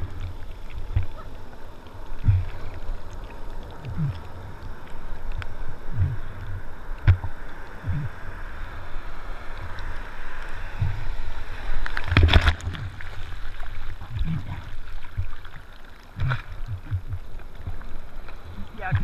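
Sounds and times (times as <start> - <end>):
surf water sloshing and slapping: 0.0 - 19.0
low thumps: 5.9 - 8.2, 16.2 - 17.8.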